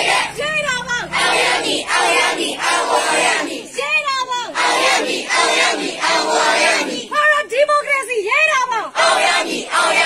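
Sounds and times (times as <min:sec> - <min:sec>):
crowd shouting together: 0:00.0 - 0:07.2, 0:08.9 - 0:10.0.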